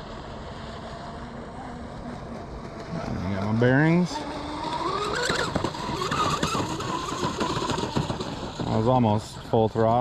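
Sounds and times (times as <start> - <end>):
electric boat motor whining: 0.0 - 10.0.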